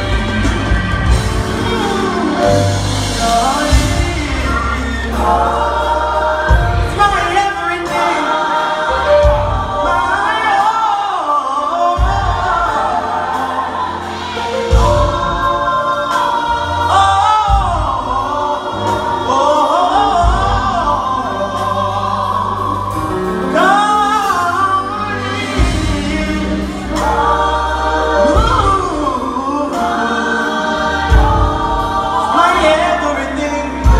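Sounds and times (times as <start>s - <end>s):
gospel choir singing: 0.0s - 33.9s
instrumental backing: 0.0s - 33.9s.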